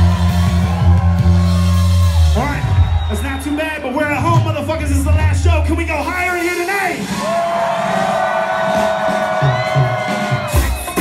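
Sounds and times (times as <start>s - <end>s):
drums: 0.0s - 11.0s
live band held high note: 0.0s - 11.0s.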